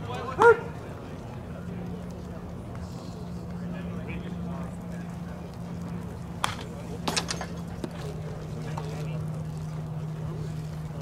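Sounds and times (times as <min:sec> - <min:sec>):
faint background voices: 0:00.0 - 0:11.0
steady low hum: 0:00.0 - 0:11.0.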